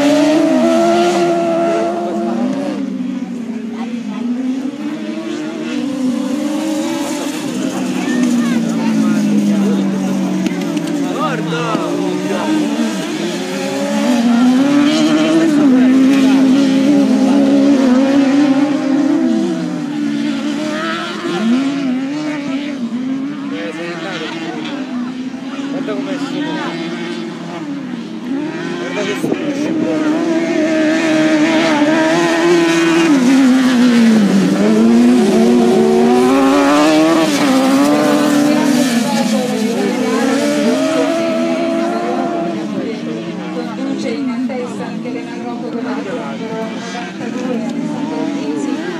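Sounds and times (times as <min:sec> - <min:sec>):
racing buggy engines revving: 0:00.0 - 0:48.9.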